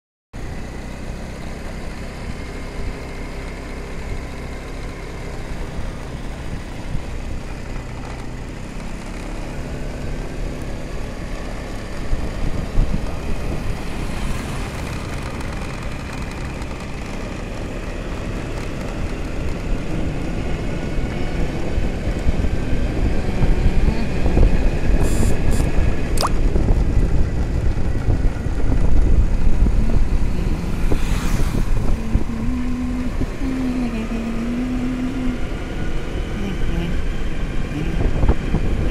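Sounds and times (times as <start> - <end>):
vehicle engine and road noise: 0.4 - 38.9
sharp clicks: 26.2 - 26.4.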